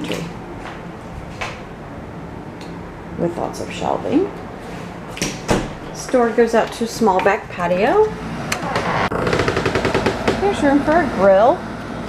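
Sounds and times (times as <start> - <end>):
air conditioner rattling buzz: 0.0 - 12.0.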